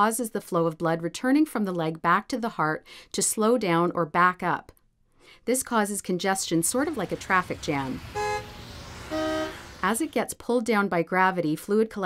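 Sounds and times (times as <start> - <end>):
car horn beeps: 7.0 - 10.0.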